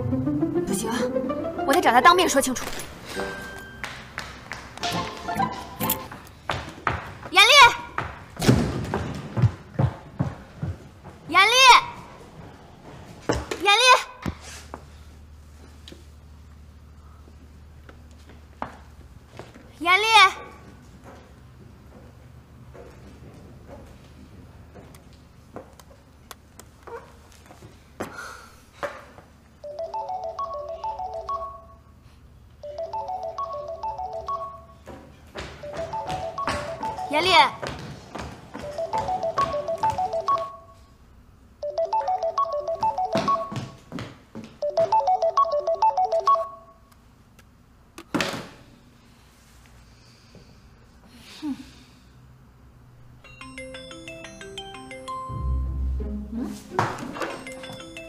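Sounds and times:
footsteps on a hard floor: 2.6 - 11.4, 34.8 - 40.5, 42.7 - 45.0, 56.3 - 58.0
mobile phone ringtone: 29.6 - 31.9, 32.6 - 34.8, 35.6 - 37.4, 38.6 - 40.8, 41.6 - 43.8, 44.6 - 46.8, 53.2 - 55.8, 57.2 - 58.0.

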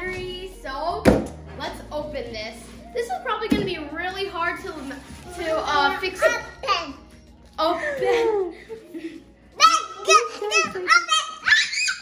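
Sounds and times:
children's voices: 9.6 - 12.0.

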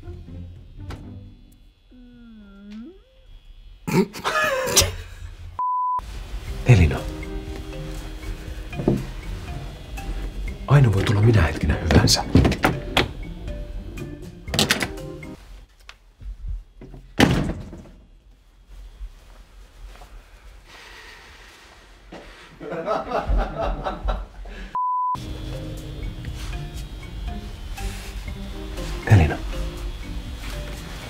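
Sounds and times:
person humming: 1.8 - 5.0
electronic censor bleep: 5.6 - 6.0, 24.8 - 25.2
person speaking: 6.6 - 7.3, 10.6 - 12.5, 28.8 - 29.6
wooden door thudding shut: 12.2 - 13.2, 17.2 - 18.0.

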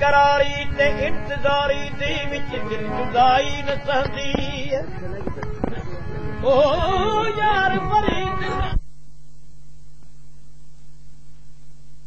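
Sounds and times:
musical accompaniment: 0.0 - 8.8
faint low hum: 0.0 - 12.0.

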